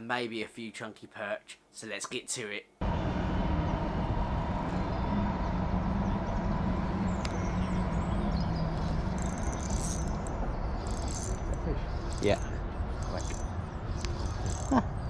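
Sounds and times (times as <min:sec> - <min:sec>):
faint hum: 0:02.8 - 0:15.0
low rumble: 0:02.8 - 0:15.0
small birds chirping: 0:06.0 - 0:15.0.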